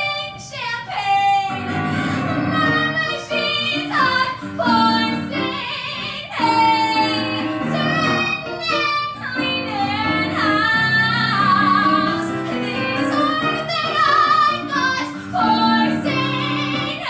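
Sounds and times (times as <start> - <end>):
woman singing into a microphone: 0.0 - 17.0.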